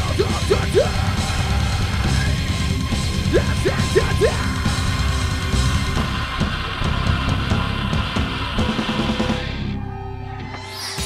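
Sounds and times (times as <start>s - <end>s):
drum kit: 0.0s - 9.6s
distorted electric guitar: 0.0s - 9.8s.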